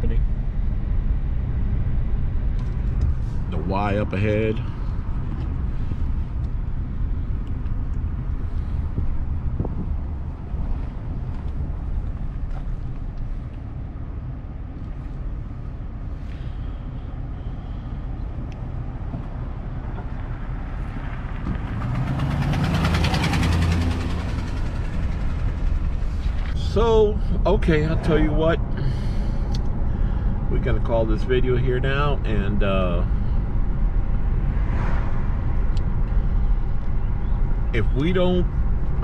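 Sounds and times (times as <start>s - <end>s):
car engine and tyre rumble: 0.0s - 39.0s
loud rushing sound: 21.7s - 30.5s, 33.5s - 37.6s
road hiss: 26.0s - 30.4s.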